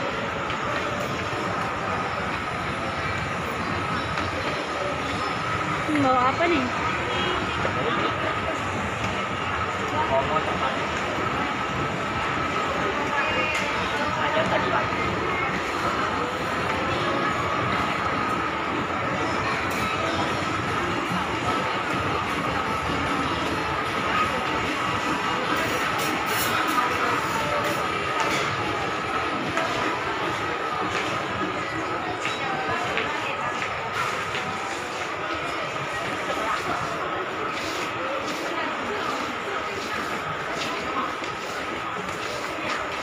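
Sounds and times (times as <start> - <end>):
crowd murmur in a large hall: 0.0 - 43.0.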